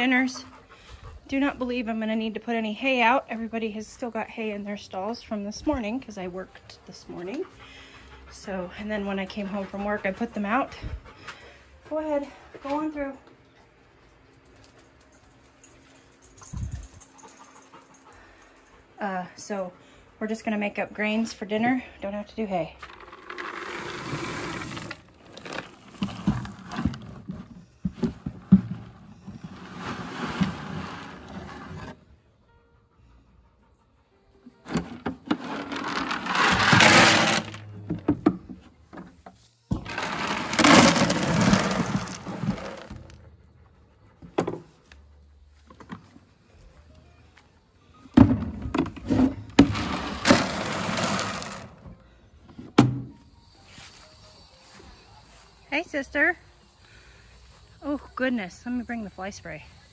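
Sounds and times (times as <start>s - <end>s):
feed pellets pouring into buckets: 22.9s - 26.8s, 35.3s - 37.7s, 39.8s - 43.2s, 49.6s - 51.8s.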